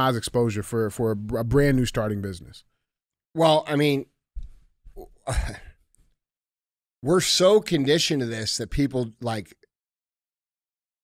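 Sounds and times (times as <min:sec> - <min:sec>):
man sighing: 0:05.0 - 0:05.8.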